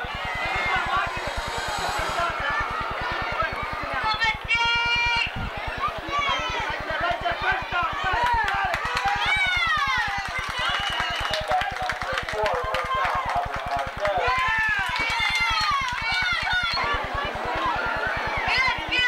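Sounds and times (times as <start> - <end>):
low pulsing hum: 0.0 - 10.8
crowd shouting and cheering: 0.0 - 19.0.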